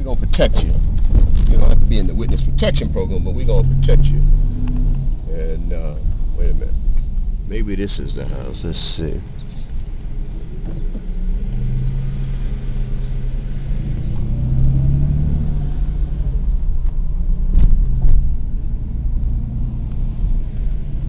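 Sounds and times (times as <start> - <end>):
car engine: 0.0 - 21.0
road noise inside car: 0.0 - 21.0.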